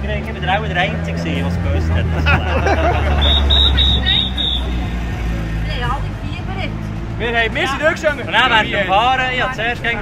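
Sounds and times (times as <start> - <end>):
people talking: 0.0 - 4.6, 5.6 - 10.0
short high beeps: 3.2 - 4.8.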